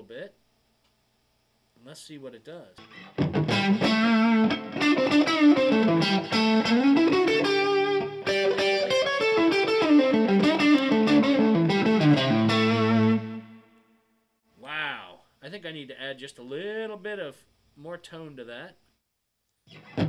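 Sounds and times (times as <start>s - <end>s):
overdriven electric guitar blues lead: 2.8s - 13.6s, 19.7s - 20.0s.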